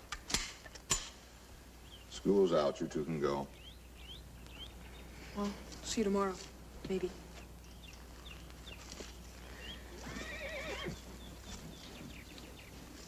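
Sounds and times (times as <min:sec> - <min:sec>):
horse neighing: 0:10.0 - 0:11.0.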